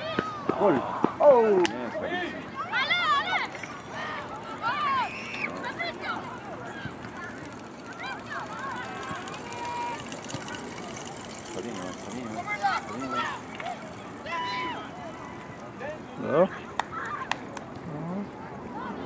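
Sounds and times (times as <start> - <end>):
background chatter: 0.0 - 19.0.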